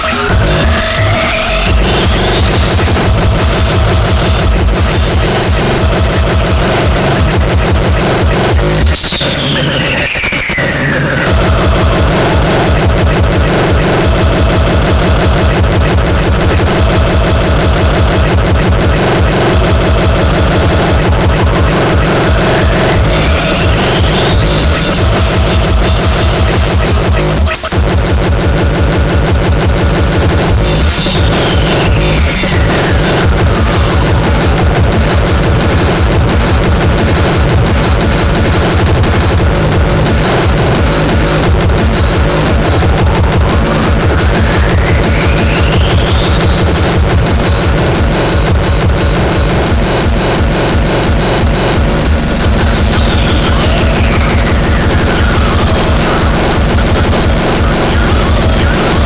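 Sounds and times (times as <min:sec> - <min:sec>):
distorted fast kick drum: 0:00.0 - 0:59.0
high synth tone sweeping: 0:00.0 - 0:59.0.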